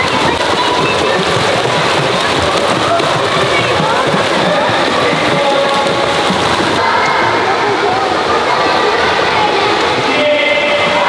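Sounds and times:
children splashing in pool: 0:00.0 - 0:11.0
children's voices echoing: 0:00.0 - 0:11.0.

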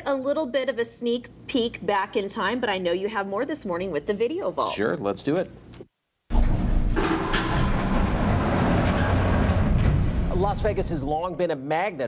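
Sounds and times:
heavy mechanical rumbling: 0:06.3 - 0:11.3.

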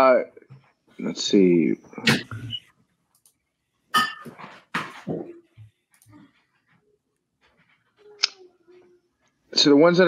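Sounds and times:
click: 0:03.1 - 0:03.4.

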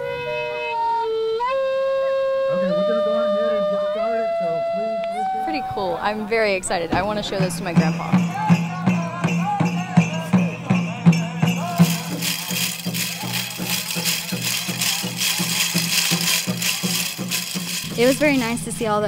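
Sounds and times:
voices singing: 0:05.2 - 0:19.0
drum beating steadily: 0:06.9 - 0:19.0
metal cones rattling: 0:11.6 - 0:19.0.

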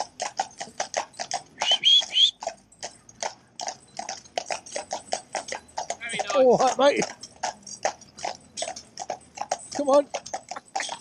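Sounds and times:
horse hooves clip-clopping on tarmac: 0:00.0 - 0:11.0.

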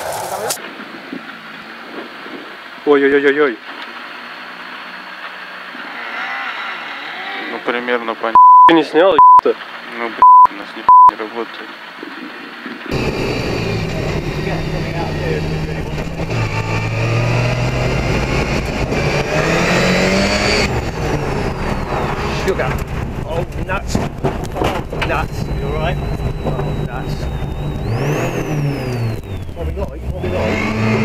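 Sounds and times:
rally car engine revving: 0:03.8 - 0:08.4, 0:12.9 - 0:31.0
sharp clicks: 0:24.3 - 0:30.0.

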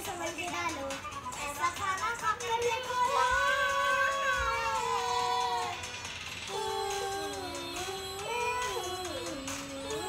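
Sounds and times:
child singing a long note: 0:02.8 - 0:05.8, 0:06.5 - 0:10.0.

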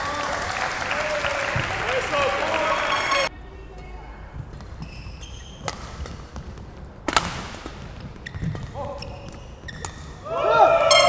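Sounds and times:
low hall noise: 0:00.0 - 0:11.0
badminton racket hitting shuttlecock: 0:04.4 - 0:11.0.

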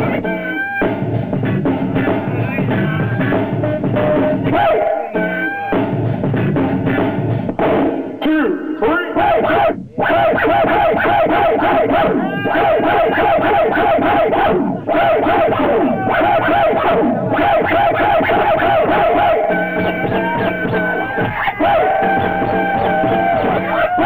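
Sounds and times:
hip-hop beat: 0:00.0 - 0:24.0
vinyl record scratching: 0:00.0 - 0:24.0
pitch-sliding sample snippets: 0:09.8 - 0:24.0.

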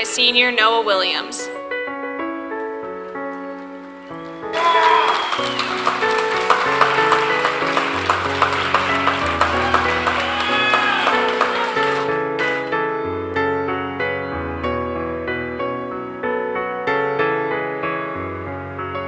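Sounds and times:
slow piano music: 0:00.0 - 0:19.0
crowd applauding and cheering: 0:04.1 - 0:13.0
voices whooping: 0:04.5 - 0:12.6.

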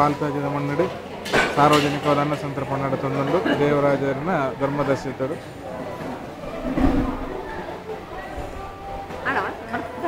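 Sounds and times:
metal dishes clattering: 0:01.2 - 0:02.6.

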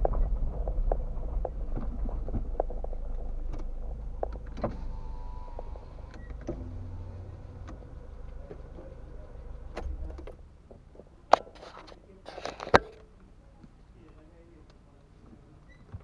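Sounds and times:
car interior rumble: 0:00.0 - 0:12.2
low motor hum: 0:00.0 - 0:12.2.

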